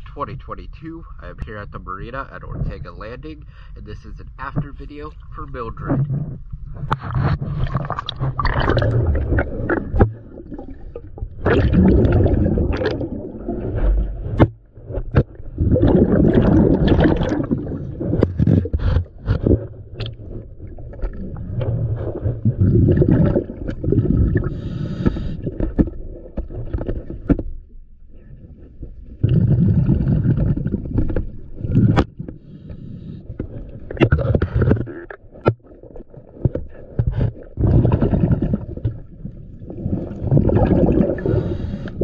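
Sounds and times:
diver inhaling through regulator: 0:03.4 - 0:03.8, 0:24.2 - 0:25.8, 0:32.4 - 0:33.4, 0:41.0 - 0:42.0
exhaled bubbles rushing: 0:05.9 - 0:27.1, 0:28.2 - 0:32.0, 0:33.5 - 0:42.0.

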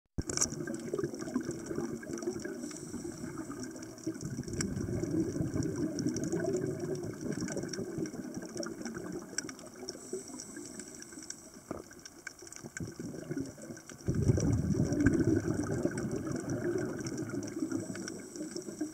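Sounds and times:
fine crackling ticks: 0:00.2 - 0:18.9
underwater watery rush: 0:00.2 - 0:18.9.

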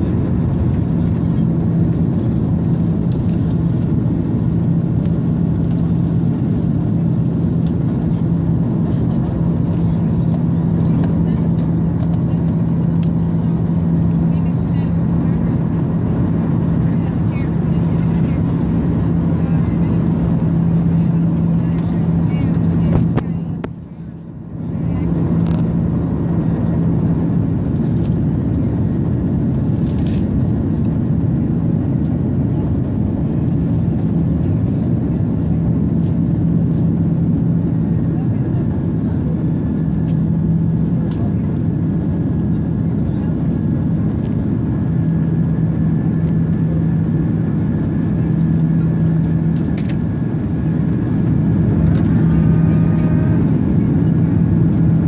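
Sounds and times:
constant low hum: 0:00.0 - 0:55.0.

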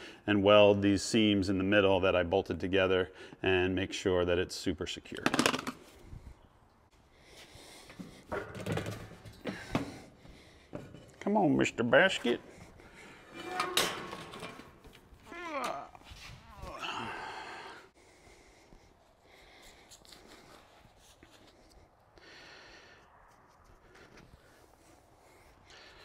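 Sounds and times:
metal squeaks and scrape: 0:13.1 - 0:14.8.

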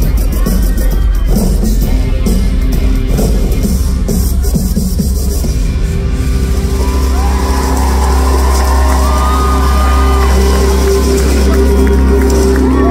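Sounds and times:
heavy bass: 0:00.0 - 0:12.9
live pop music: 0:00.0 - 0:12.9
crowd whooping and cheering: 0:06.0 - 0:12.9.

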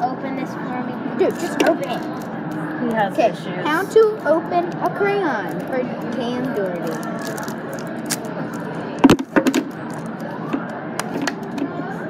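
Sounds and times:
busy room background noise: 0:00.0 - 0:12.0
cardboard pack being torn open: 0:06.8 - 0:08.7.

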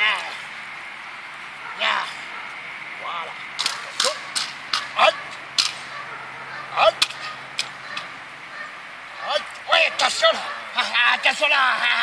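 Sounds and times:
stick cracking: 0:03.6 - 0:05.9, 0:07.0 - 0:08.1.

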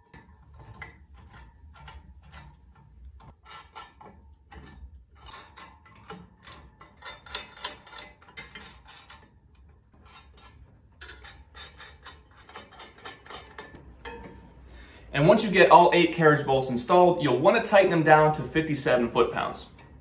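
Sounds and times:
metal nuts and washers clicking: 0:00.0 - 0:14.6.

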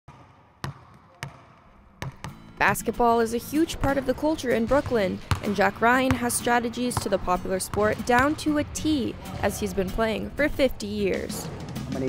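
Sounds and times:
basketball bouncing on wooden floor: 0:00.1 - 0:02.4, 0:03.8 - 0:08.8.

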